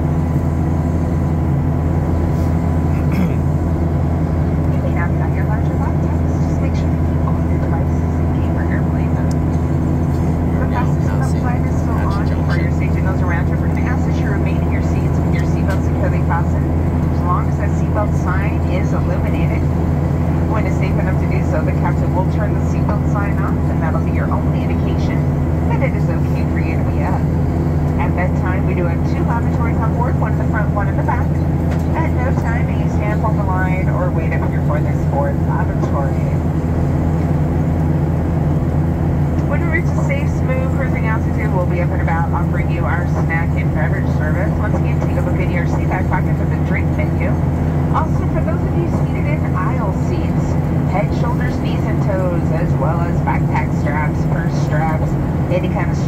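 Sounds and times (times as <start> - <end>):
airplane cabin drone: 0.0 - 56.0
indistinct passenger voices: 2.2 - 3.6, 4.6 - 37.4, 39.4 - 56.0.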